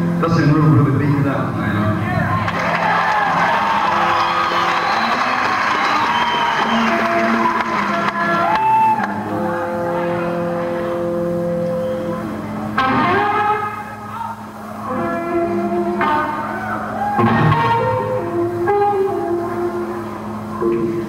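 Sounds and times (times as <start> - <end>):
electric guitar with string bends: 3.9 - 21.0.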